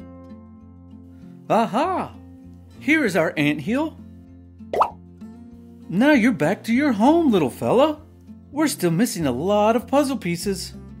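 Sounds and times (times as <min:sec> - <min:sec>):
soft background music: 0:00.0 - 0:11.0
cartoon bloop sound effect: 0:04.8 - 0:05.0.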